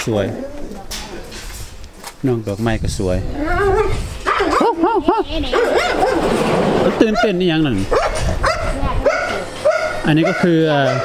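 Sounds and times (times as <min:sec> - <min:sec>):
dog yipping: 0:05.5 - 0:06.3, 0:07.9 - 0:11.0.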